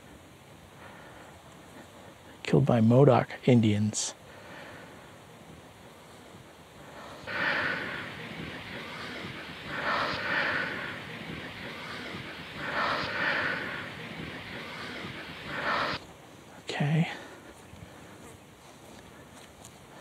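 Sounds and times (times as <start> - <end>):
person breathing out heavily: 4.2 - 5.1, 6.8 - 16.0.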